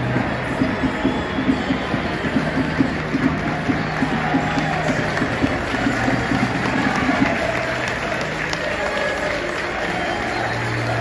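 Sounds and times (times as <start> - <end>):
music over stadium sound system: 0.0 - 11.0
people clapping: 0.0 - 11.0.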